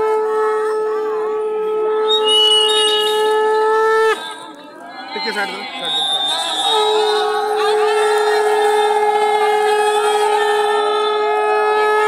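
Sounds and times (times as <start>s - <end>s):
conch shell blown: 0.0s - 4.6s, 5.9s - 12.0s.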